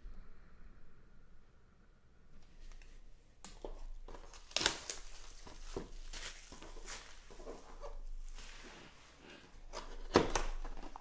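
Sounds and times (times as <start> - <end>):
plastic packaging crinkling: 3.5 - 8.6, 9.6 - 11.0.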